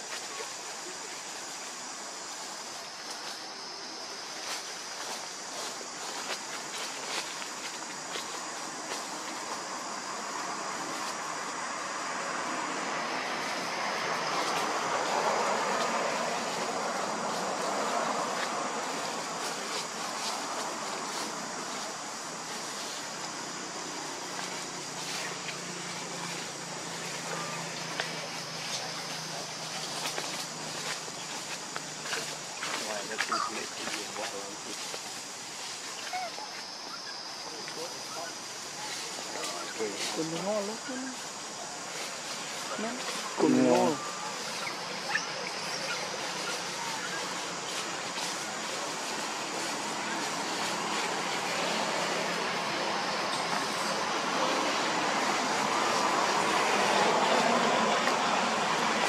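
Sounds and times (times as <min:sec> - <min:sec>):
vehicle passing: 0:10.1 - 0:33.1, 0:41.9 - 0:59.0.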